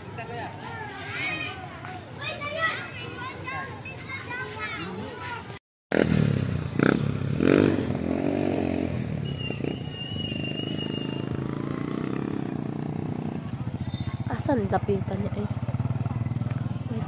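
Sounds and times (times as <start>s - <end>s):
small motorcycle engine running: 5.9s - 17.0s.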